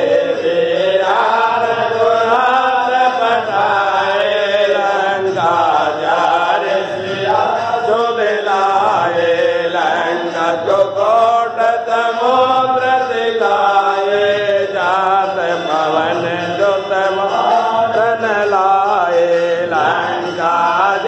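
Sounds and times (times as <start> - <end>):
voices chanting a hymn: 0.0 - 21.0.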